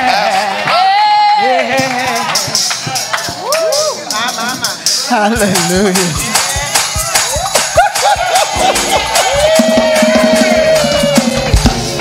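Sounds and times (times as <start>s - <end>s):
church praise music: 0.0s - 12.0s
voices calling out and singing: 0.0s - 12.0s
congregation clapping along: 0.1s - 3.7s, 5.4s - 12.0s.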